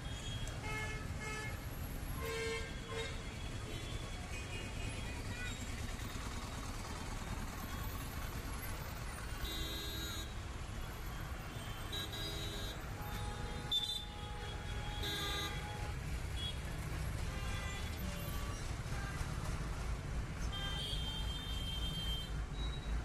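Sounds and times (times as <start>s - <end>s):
city traffic rumbling: 0.0s - 23.0s
vehicle horns honking: 9.4s - 10.4s, 11.6s - 16.6s, 20.5s - 22.7s.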